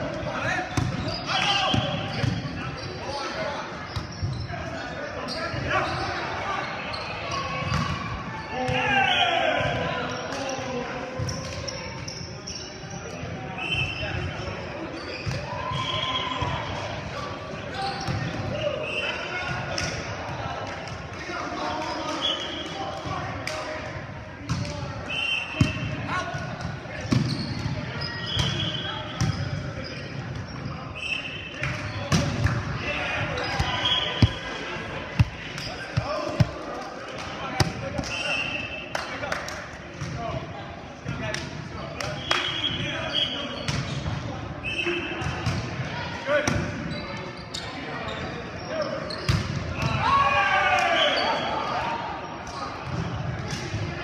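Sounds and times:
sneaker squeaks on court: 0.7s - 8.0s, 11.2s - 16.1s, 17.7s - 19.2s, 27.1s - 32.4s, 33.2s - 36.6s, 42.4s - 44.2s, 46.7s - 49.9s
players calling out: 27.2s - 39.3s
ball striking floor: 33.5s - 34.5s.

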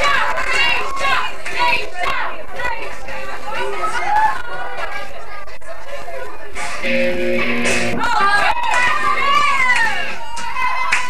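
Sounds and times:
young people chattering: 0.0s - 10.8s
music with held notes: 6.6s - 8.2s.

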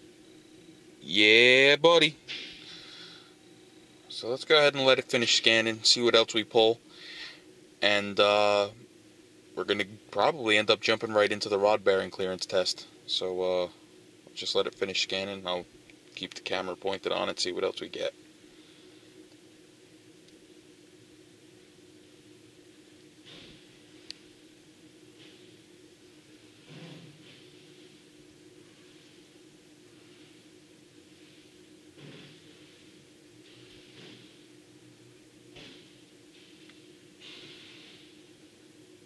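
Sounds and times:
low hum with faint hiss: 0.0s - 39.0s
soft breaths: 2.6s - 3.4s, 6.8s - 7.5s, 18.4s - 19.3s.

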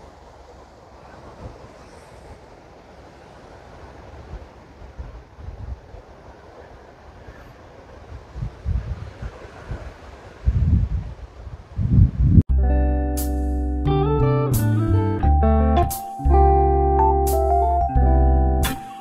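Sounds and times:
wind buffeting microphone: 0.0s - 12.5s.

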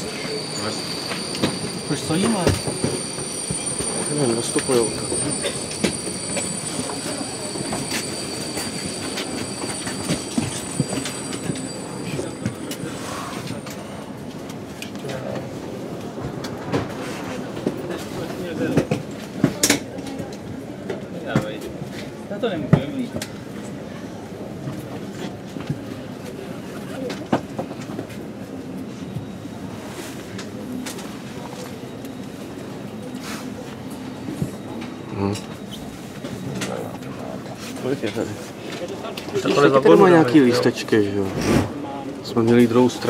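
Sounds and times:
train wheels squealing on rails: 0.0s - 14.3s, 23.0s - 40.9s.

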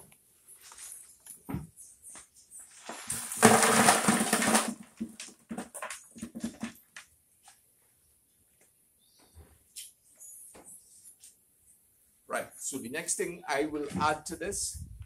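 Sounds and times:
bark and grit pouring into bucket: 2.8s - 6.0s
sieve knocking on bucket: 3.0s - 6.7s.

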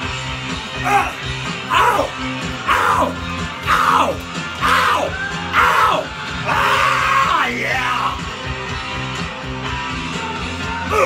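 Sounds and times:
rock song playing: 0.0s - 11.0s
man yelling along: 0.8s - 8.2s.

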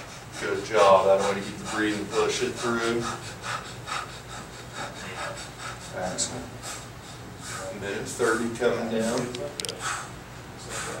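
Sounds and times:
man breathing hard: 0.0s - 8.7s, 9.7s - 11.0s.

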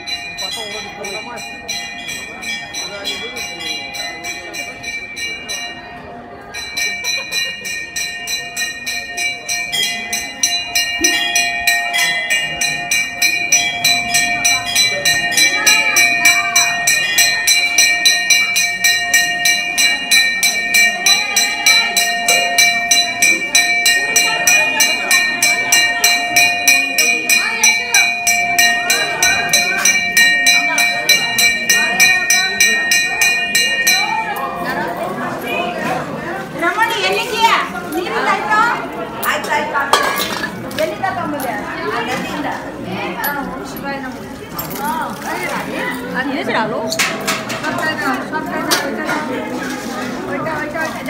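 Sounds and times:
hand bell rung rapidly: 0.0s - 35.8s
people talking over each other: 0.0s - 51.0s.

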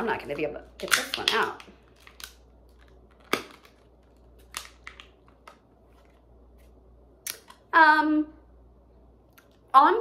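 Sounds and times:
plastic packaging cracking and snapping: 0.8s - 5.6s.

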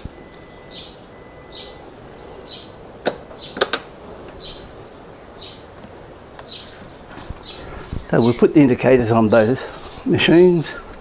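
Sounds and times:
ignition switch clicks: 3.0s - 4.5s.

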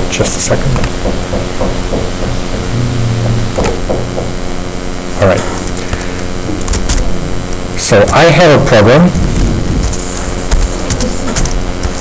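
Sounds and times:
electrical machine hum: 0.0s - 12.0s
low tone: 2.6s - 4.2s.

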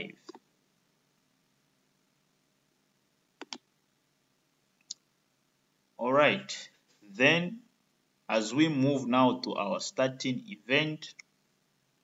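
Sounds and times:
computer mouse clicks: 3.4s - 3.7s.

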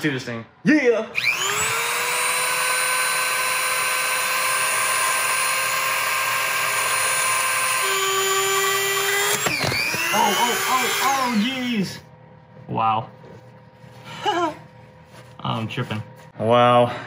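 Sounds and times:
rotary tool grinding metal: 1.2s - 11.4s.

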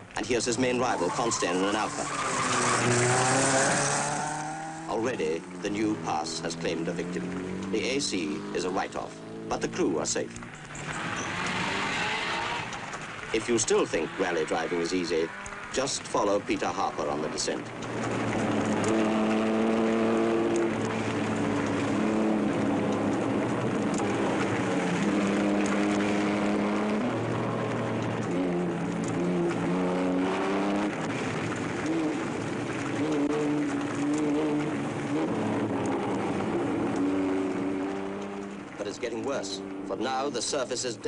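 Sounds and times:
rally car engine revving: 0.0s - 41.0s.

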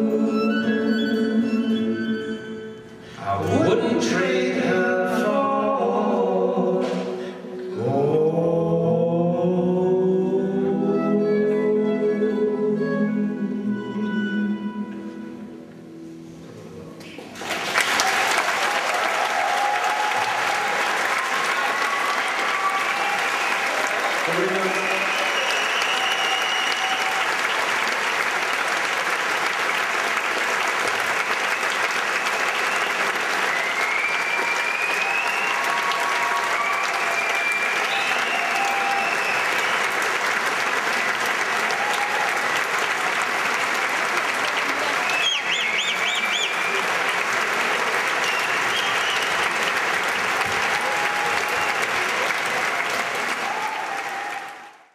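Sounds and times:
large audience applauding: 17.0s - 54.9s
high shouts: 18.6s - 27.3s, 53.3s - 54.8s
whistles: 24.7s - 27.3s, 31.5s - 40.1s, 44.6s - 47.0s, 48.2s - 49.6s.

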